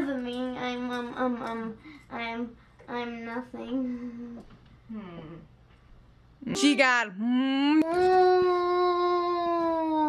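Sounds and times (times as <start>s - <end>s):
woman humming: 4.9s - 5.5s, 6.5s - 10.0s.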